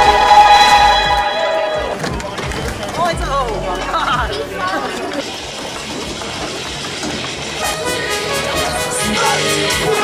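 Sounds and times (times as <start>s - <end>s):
music: 0.0s - 10.0s
skateboard wheels rolling on asphalt: 1.3s - 8.0s.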